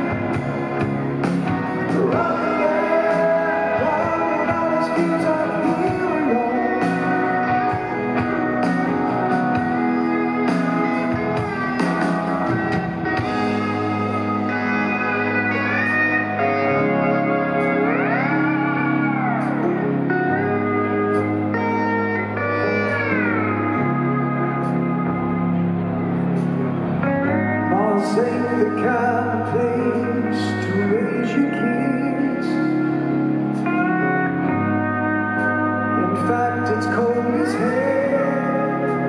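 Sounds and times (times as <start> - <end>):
bass: 0.0 - 39.0
steel guitar sliding notes: 0.0 - 39.0
drums and cymbals: 6.8 - 14.4.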